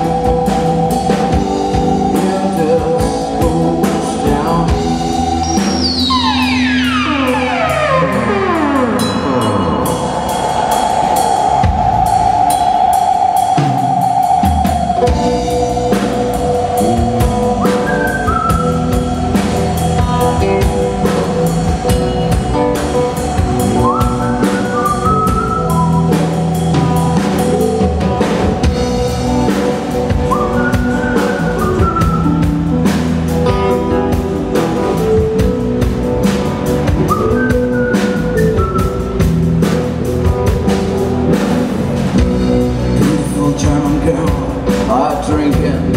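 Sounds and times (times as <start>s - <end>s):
drum kit beat: 0.0s - 45.9s
electric guitar: 0.0s - 45.9s
keyboard: 0.0s - 45.9s.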